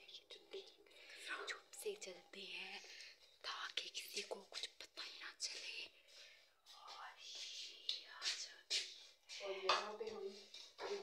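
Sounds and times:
person whispering: 0:00.0 - 0:05.9, 0:06.6 - 0:11.0.

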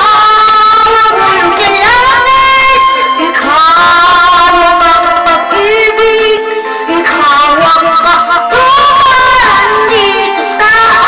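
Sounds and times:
high voice singing: 0:00.0 - 0:11.0
instrumental backing: 0:00.0 - 0:11.0.

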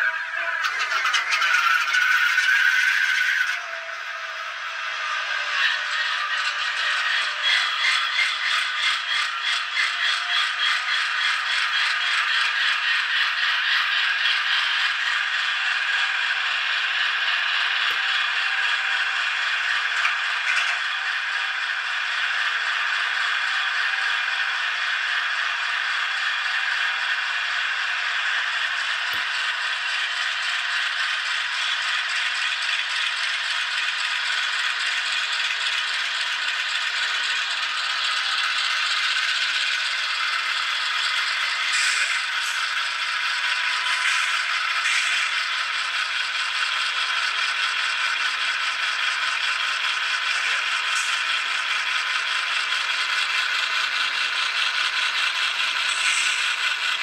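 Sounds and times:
rattling model locomotive chug: 0:00.0 - 0:57.0.

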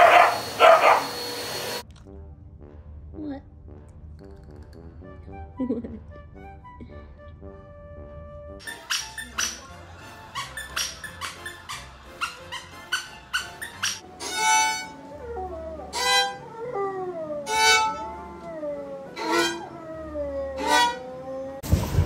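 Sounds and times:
squeaky toy squeaks: 0:08.6 - 0:15.0, 0:17.5 - 0:18.2, 0:19.1 - 0:21.2
violin playing: 0:14.0 - 0:21.6
dog howling: 0:15.0 - 0:21.6.

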